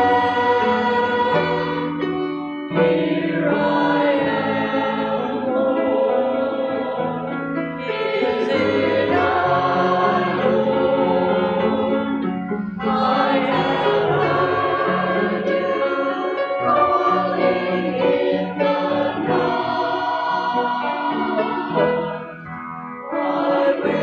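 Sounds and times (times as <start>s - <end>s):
choir accompaniment: 0.0s - 24.0s
church choir singing a hymn: 0.0s - 24.0s.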